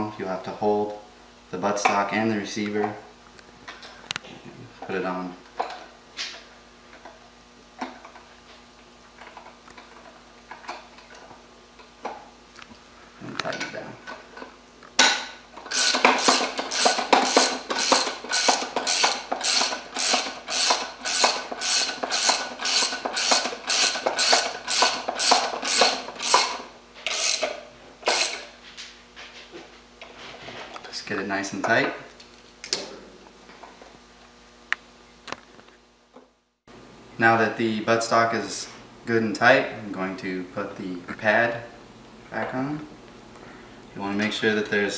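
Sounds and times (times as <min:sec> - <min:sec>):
socket ratchet clicking: 0:15.7 - 0:28.4.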